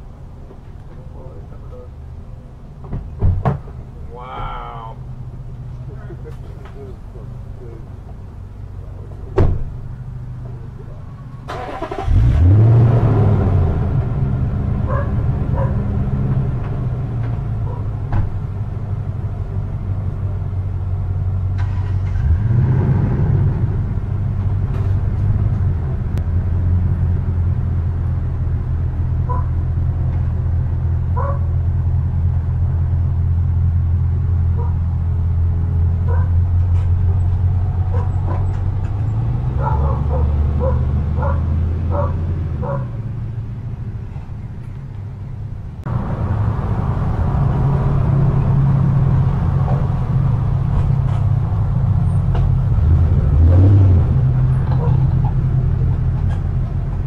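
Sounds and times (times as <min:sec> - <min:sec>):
truck engine starting and running: 0:00.0 - 0:57.0.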